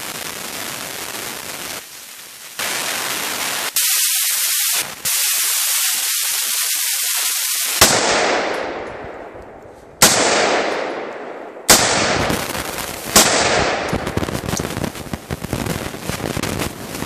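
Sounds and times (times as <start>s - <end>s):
steady hiss: 0.0s - 8.0s, 12.0s - 17.0s
crackling noise: 0.0s - 17.0s
rifle shots with echo: 7.7s - 14.1s.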